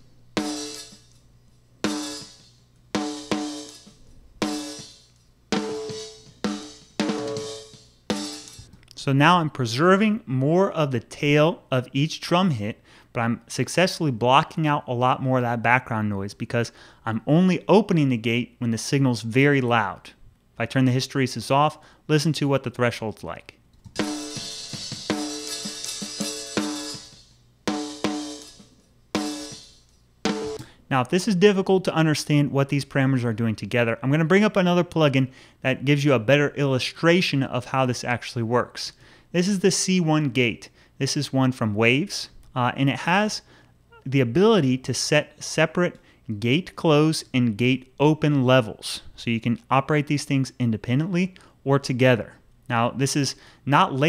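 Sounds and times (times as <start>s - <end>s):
hi-hat and cymbal bleed: 0.0s - 1.2s, 1.8s - 8.7s, 24.0s - 30.7s.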